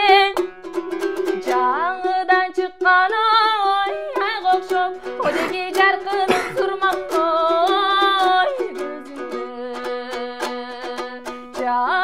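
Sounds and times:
woman singing: 0.0s - 0.5s, 1.2s - 12.0s
strummed lute: 0.0s - 12.0s.

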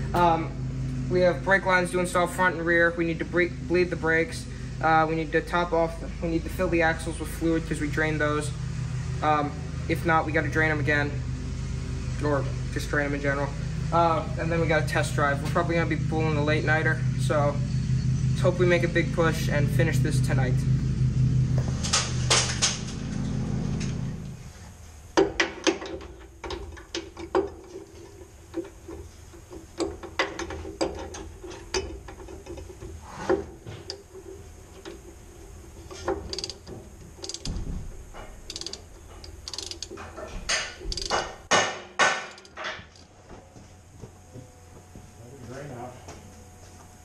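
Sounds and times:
faint steady hum: 0.0s - 47.0s
metal clinks and knocks: 25.2s - 43.1s
ratchet wrench clicking: 35.8s - 37.5s, 38.4s - 41.4s, 42.3s - 43.0s.

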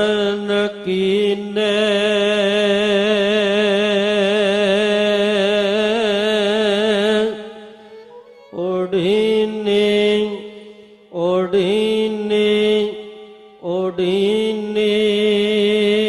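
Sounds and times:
man chanting melodically: 0.0s - 16.0s.

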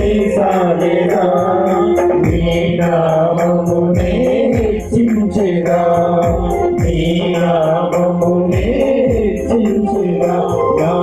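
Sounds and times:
high jingling beat: 0.0s - 11.0s
low drum beat: 0.0s - 11.0s
voices singing a hymn: 0.0s - 11.0s.

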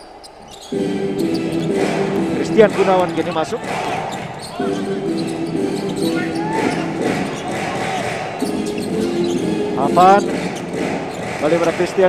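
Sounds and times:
sneaker squeaks: 0.0s - 2.0s, 2.7s - 11.5s
basketball dribbling on hardwood: 10.2s - 11.7s.

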